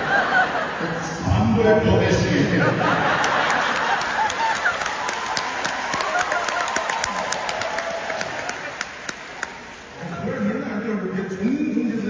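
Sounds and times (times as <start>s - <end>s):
audience laughing: 0.0s - 5.1s, 5.9s - 7.4s
scattered handclaps: 3.5s - 9.6s.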